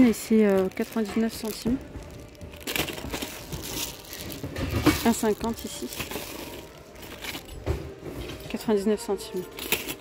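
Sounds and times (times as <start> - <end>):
utensils rustling and clinking: 0.0 - 10.0.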